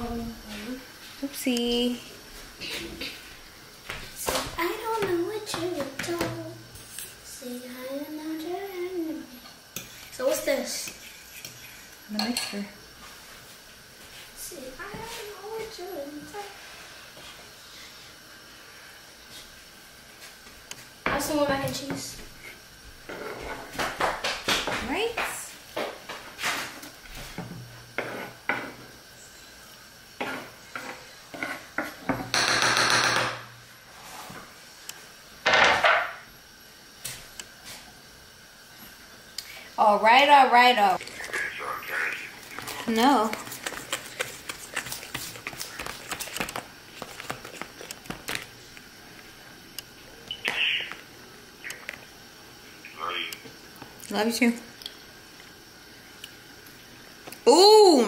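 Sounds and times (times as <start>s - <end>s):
knife scraping cutting board: 10.8s - 11.9s
utensils clinking on bowls: 12.2s - 12.7s.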